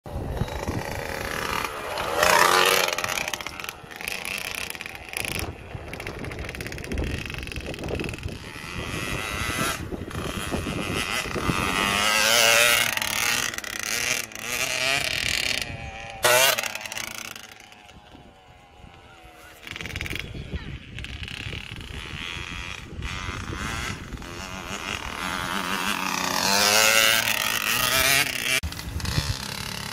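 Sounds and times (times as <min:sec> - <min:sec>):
motocross bike revving past: 0:00.1 - 0:29.9.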